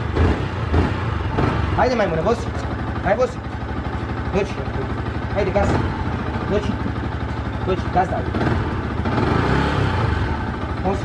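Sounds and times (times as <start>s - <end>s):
motorcycle engine idling and revving: 0.0s - 11.0s.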